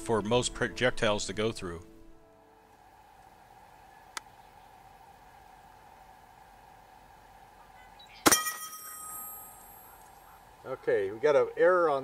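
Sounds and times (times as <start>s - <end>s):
lingering metallic ringing: 8.2s - 10.2s.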